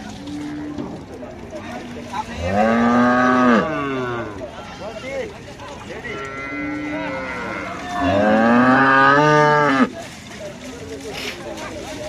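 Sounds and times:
cow mooing: 2.4 - 4.4, 6.1 - 9.9.

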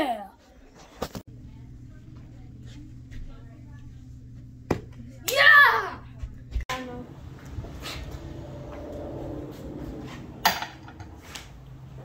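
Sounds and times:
low steady hum: 1.2 - 12.0.

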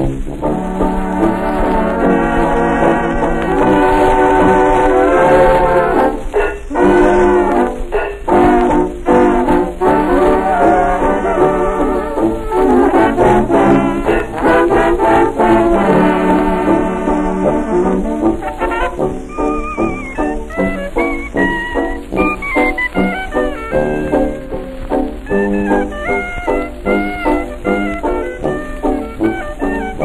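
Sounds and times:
jazz dance orchestra with brass: 0.0 - 30.0
record hiss: 0.0 - 30.0.

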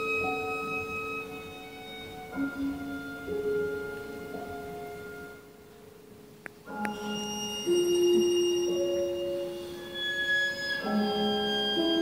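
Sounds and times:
slow classical strings with piano: 0.0 - 12.0
faint click: 6.4 - 7.0.

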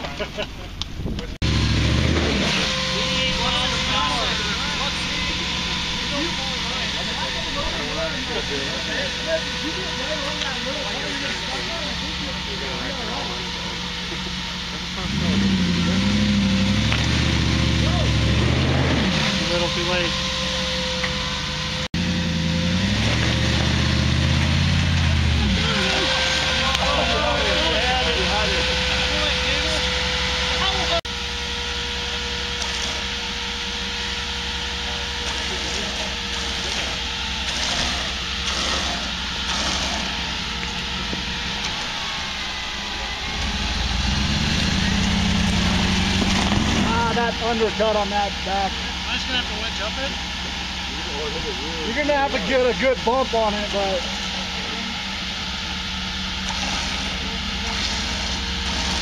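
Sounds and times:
steady whine: 0.0 - 59.0
engine revving under load: 1.2 - 59.0.

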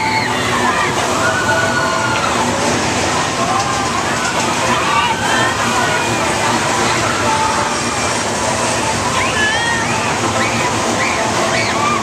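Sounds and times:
carnival ride rushing noise: 0.0 - 12.0
riders screaming: 9.2 - 12.0.

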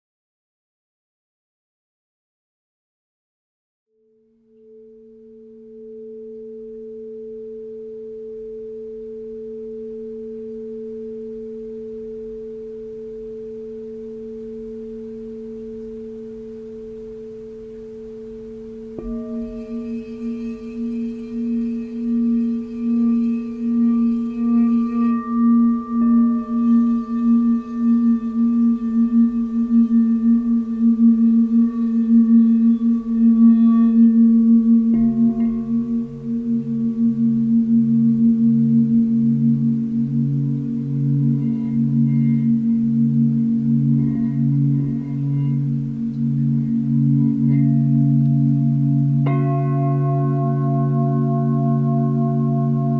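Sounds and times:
singing bowl tones: 4.1 - 52.9
singing bowl struck ringing: 4.5 - 52.9.

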